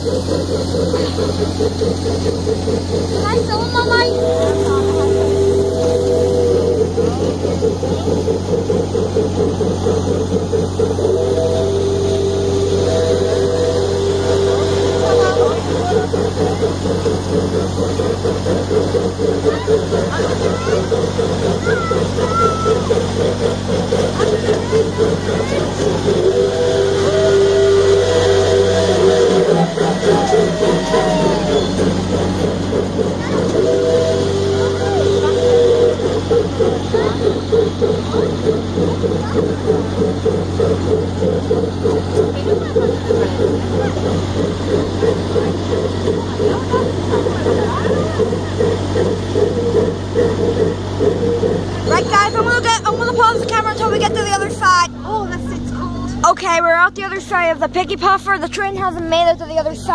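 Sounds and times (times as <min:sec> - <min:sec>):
miniature train running: 0:00.0 - 0:59.9
rhythmic wheel clatter: 0:00.0 - 0:59.9.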